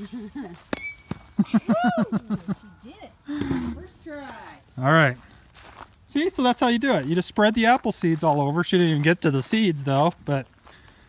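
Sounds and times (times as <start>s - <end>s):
people laughing: 0.0s - 0.6s, 1.4s - 2.8s
bat smacking an apple: 0.7s - 1.3s
person shouting woo: 1.7s - 2.2s.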